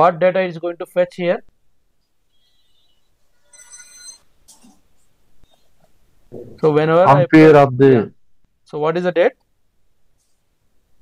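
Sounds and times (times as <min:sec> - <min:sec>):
high electronic ringing tone: 0:03.4 - 0:04.4.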